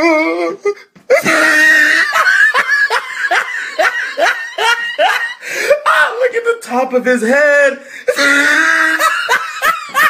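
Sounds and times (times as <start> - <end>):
person laughing loudly: 1.1 - 6.0, 8.1 - 10.0.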